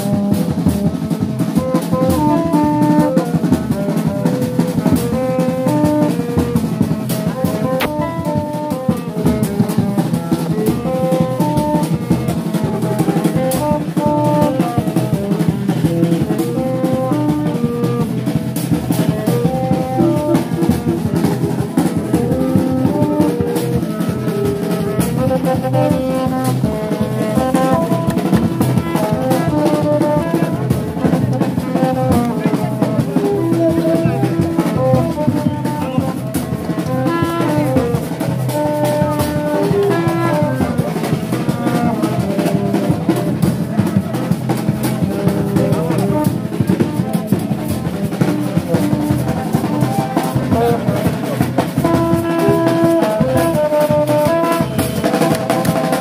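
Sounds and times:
brass band horn melody: 0.0s - 56.0s
driving drum beat: 0.0s - 56.0s.

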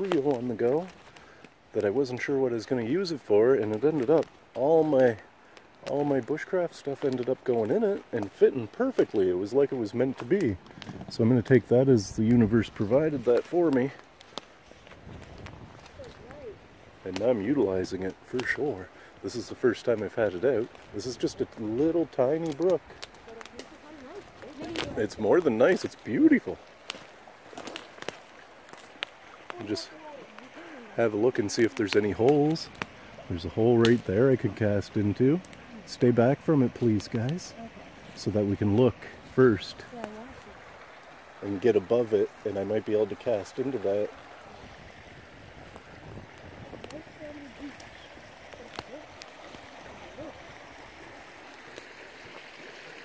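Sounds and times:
twig cracks: 0.0s - 1.9s, 3.6s - 6.3s, 10.0s - 11.2s, 12.4s - 18.6s, 19.9s - 30.7s, 31.3s - 33.2s, 33.8s - 34.6s, 35.3s - 35.8s, 45.7s - 50.4s
faint clicks: 0.0s - 2.0s, 3.6s - 9.2s, 10.0s - 11.3s, 13.2s - 16.5s, 19.9s - 26.1s, 31.4s - 33.2s, 35.4s - 36.1s
brook water rushing: 0.0s - 53.0s
footsteps on dry needles and twigs: 12.2s - 18.7s, 20.6s - 34.4s.

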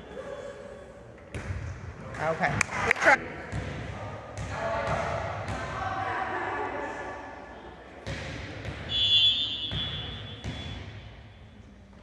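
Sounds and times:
referee's whistle: 8.9s - 10.8s
volleyball being hit: 9.7s - 11.1s.

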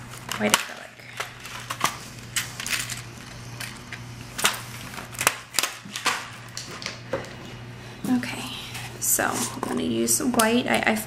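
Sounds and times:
steady low hum: 0.0s - 11.0s
plastic items clicking and rattling: 0.1s - 7.2s.

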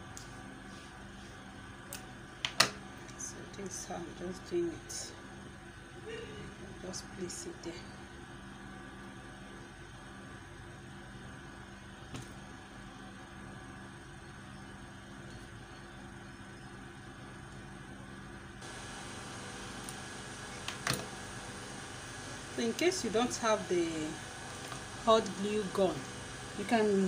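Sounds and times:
low room hum: 0.0s - 27.0s
even hiss: 18.6s - 27.0s.

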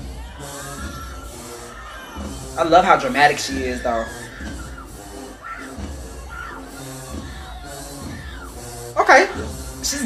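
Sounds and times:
crowd noise: 0.0s - 10.0s
marching band playing: 0.0s - 10.0s.

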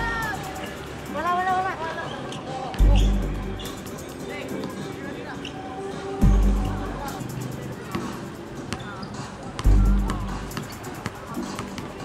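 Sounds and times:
background music: 0.0s - 12.0s
deep bass hit: 6.2s - 7.0s
basketball bouncing on concrete: 9.6s - 11.9s.

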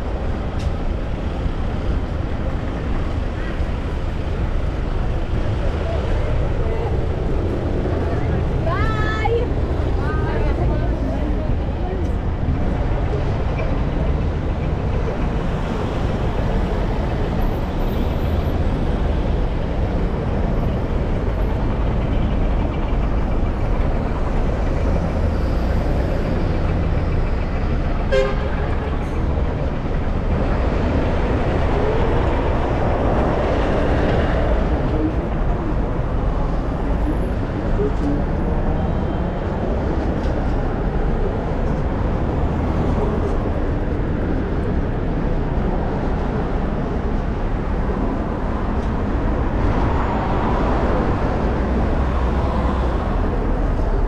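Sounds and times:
road traffic: 0.0s - 54.0s
car horn toot: 28.1s - 28.6s.

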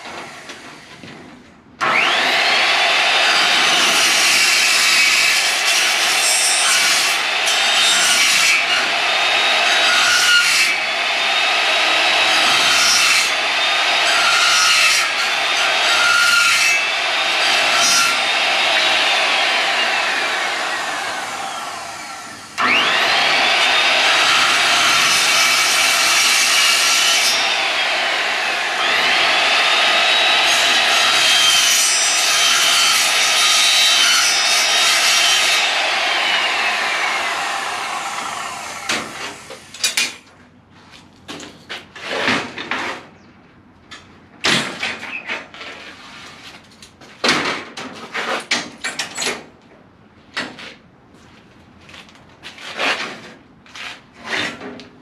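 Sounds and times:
circular saw cutting metal: 1.8s - 40.0s.

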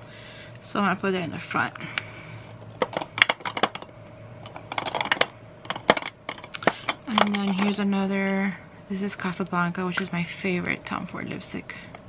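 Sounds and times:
lipstick cases clicking: 2.8s - 7.8s.

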